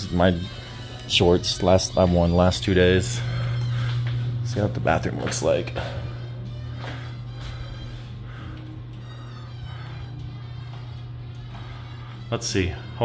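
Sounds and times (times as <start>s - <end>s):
jazz record playing: 0.0s - 13.0s
steady low hum: 0.0s - 13.0s.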